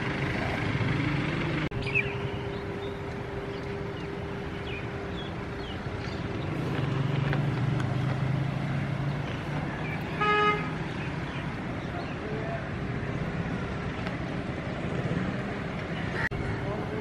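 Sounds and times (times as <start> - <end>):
road traffic hum: 0.0 - 17.0
horn toot: 10.1 - 10.8.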